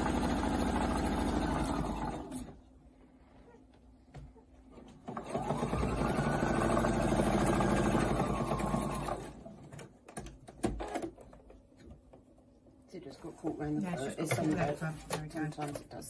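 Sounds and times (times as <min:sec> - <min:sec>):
electric sewing machine stitching: 0:00.0 - 0:02.6, 0:05.0 - 0:09.8.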